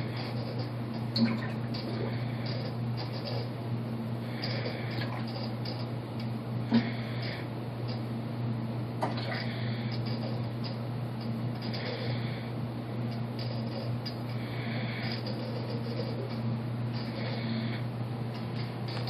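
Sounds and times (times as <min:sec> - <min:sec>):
aquarium filter humming: 0:00.0 - 0:19.0.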